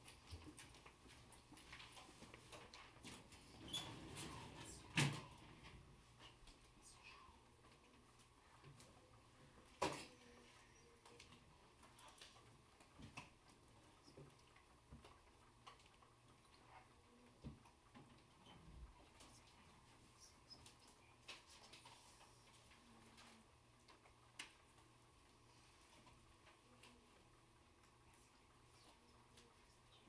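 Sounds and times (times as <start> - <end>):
faint low hum: 0.0 - 30.0.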